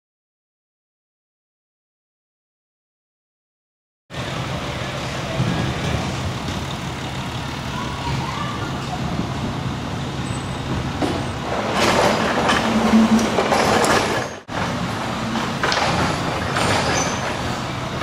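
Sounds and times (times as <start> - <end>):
road noise: 4.1 - 18.0
vehicle engine humming: 4.1 - 18.0.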